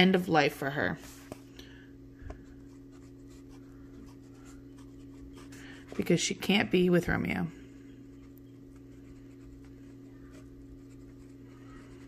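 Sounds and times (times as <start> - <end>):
steady low hum: 0.0 - 12.0
pen scratching on paper: 8.9 - 12.0.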